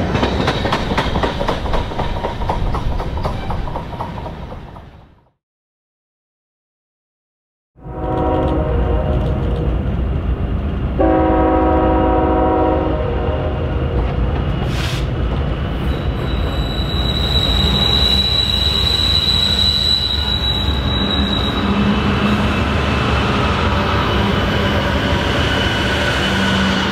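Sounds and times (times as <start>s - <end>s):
freight train passing: 0.0s - 5.3s, 7.8s - 26.9s
locomotive horn blasts: 7.8s - 9.4s, 11.0s - 13.5s
high wheel squeal: 15.8s - 23.2s.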